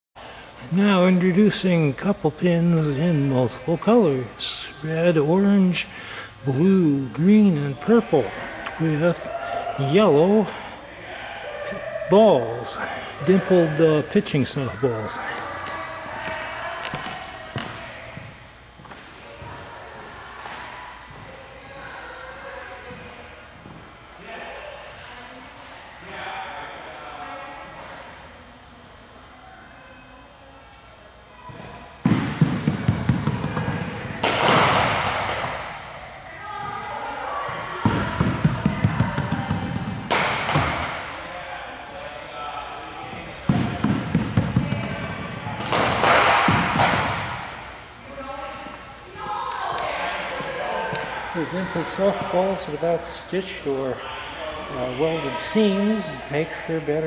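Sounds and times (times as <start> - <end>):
balls rolling along floor: 31.5 - 36.0, 36.6 - 41.4, 43.1 - 47.6.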